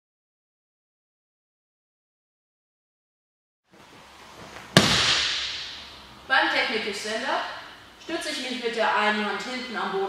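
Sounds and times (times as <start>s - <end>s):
body smacking a mat: 4.4s - 5.6s.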